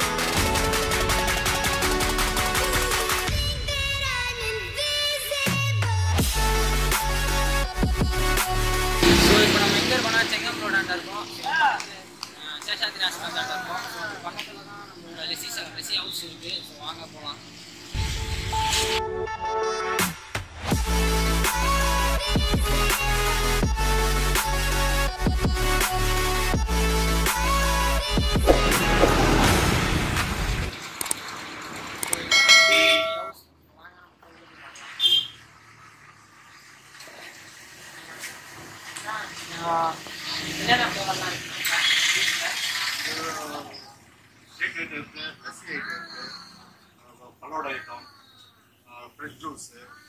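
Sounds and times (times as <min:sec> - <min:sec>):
music: 0:00.0 - 0:11.3, 0:17.9 - 0:30.7
bell chime: 0:09.0 - 0:11.3, 0:32.3 - 0:33.4
passing traffic: 0:28.4 - 0:32.6.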